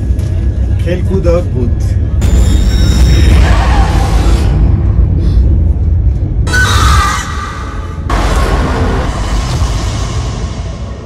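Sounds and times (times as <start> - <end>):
low rumble: 0.0 - 11.0
horror trailer music: 2.2 - 11.0.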